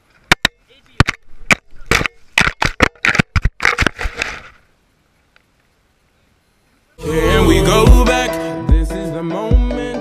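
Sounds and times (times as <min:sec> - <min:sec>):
camera tumbling over ground: 0:00.0 - 0:05.8.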